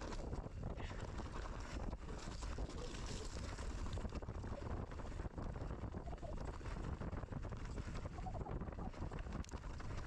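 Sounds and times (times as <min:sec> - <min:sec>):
mountain bike rattling on rocks: 0:00.0 - 0:10.0
wind buffeting microphone: 0:00.0 - 0:10.0.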